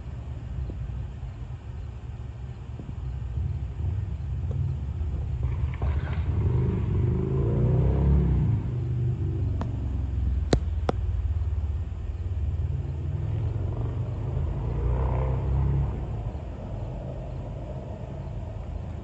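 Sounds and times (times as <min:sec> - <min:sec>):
vehicle engine rumble: 0:00.0 - 0:19.0.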